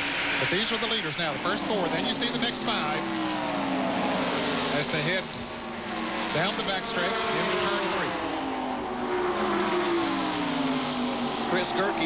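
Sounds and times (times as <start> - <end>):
stock car engines racing past: 0.0 - 12.0.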